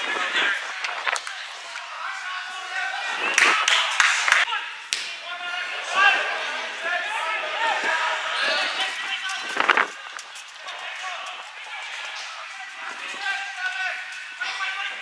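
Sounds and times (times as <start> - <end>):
footballers shouting: 0.0 - 15.0.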